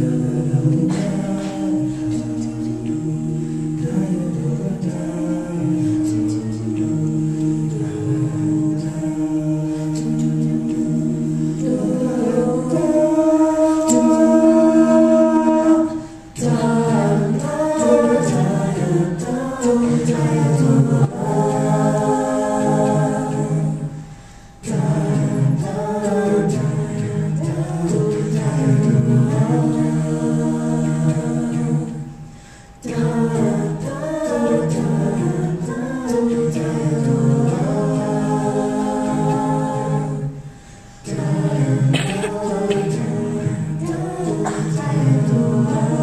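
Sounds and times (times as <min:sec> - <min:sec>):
vocal ensemble singing a cappella: 0:00.0 - 0:46.0.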